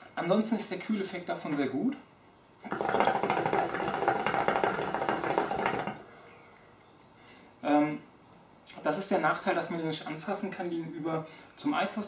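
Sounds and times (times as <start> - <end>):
water pipe bubbling: 2.7 - 6.1.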